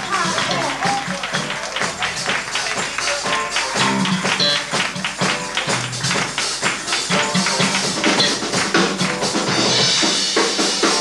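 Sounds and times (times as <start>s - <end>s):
busy percussion strokes: 0.0s - 11.0s
live funk band playing: 0.0s - 11.0s
electric bass line: 3.8s - 6.3s, 7.1s - 10.0s.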